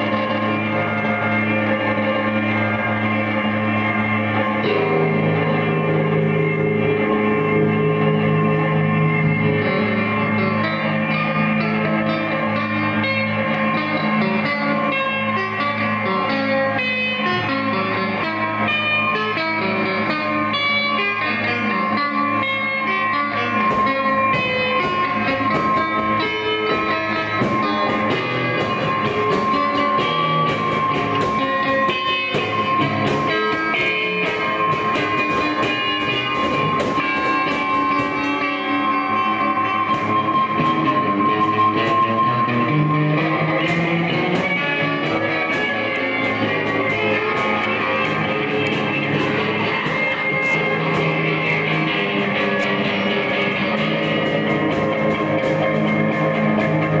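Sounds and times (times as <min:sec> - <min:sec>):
layered electric guitars: 0:00.0 - 0:57.0
steady high tone: 0:00.0 - 0:57.0.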